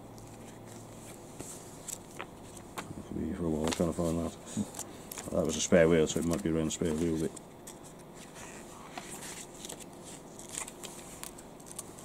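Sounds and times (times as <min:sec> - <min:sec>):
paper pages rustling: 0:03.6 - 0:12.0.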